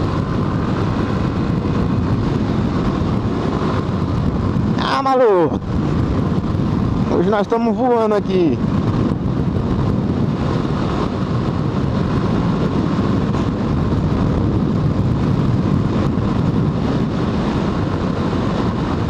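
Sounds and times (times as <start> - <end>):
motorcycle engine running: 0.0 - 7.7, 8.6 - 19.0
wind over microphone: 0.0 - 19.0.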